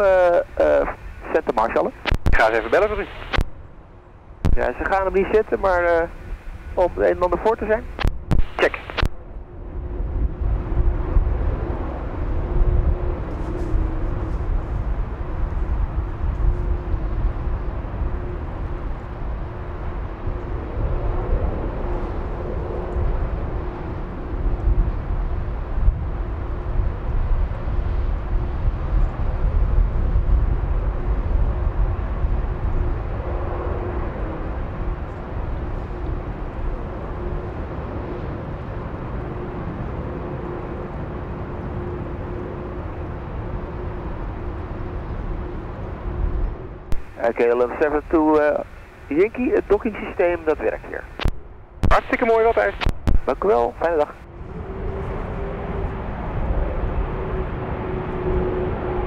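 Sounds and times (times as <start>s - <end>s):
jet engines idling: 0.0s - 9.4s, 32.7s - 59.0s.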